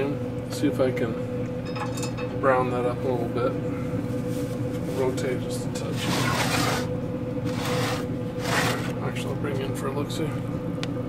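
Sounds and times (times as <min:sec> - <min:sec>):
steady hum: 0:00.0 - 0:11.0
baking sheet scraping metal grates: 0:05.8 - 0:09.0.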